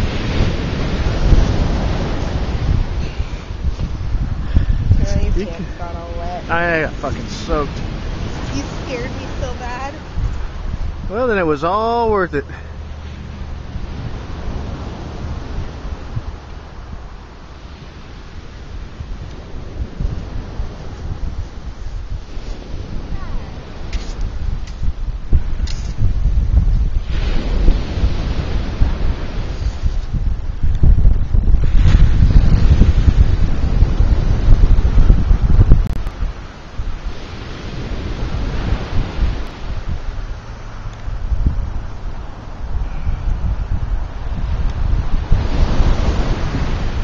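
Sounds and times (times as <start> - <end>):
surf washing: 0.0 - 47.0
wind buffeting microphone: 0.0 - 47.0.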